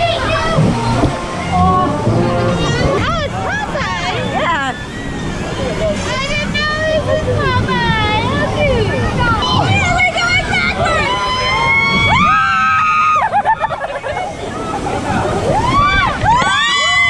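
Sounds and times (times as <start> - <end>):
people screaming and shrieking: 0.0 - 17.0
water rushing and sloshing: 0.0 - 17.0.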